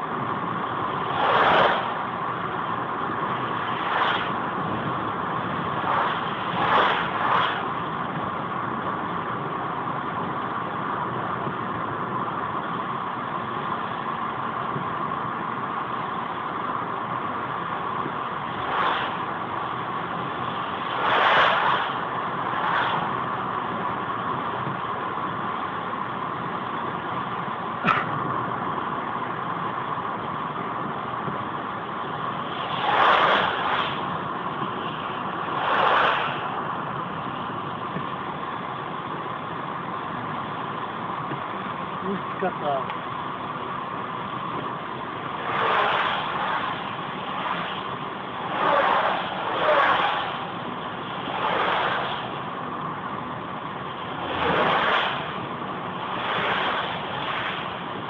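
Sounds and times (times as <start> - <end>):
car engine and tyre noise: 0.0 - 58.0
passing vehicles rushing: 0.0 - 58.0.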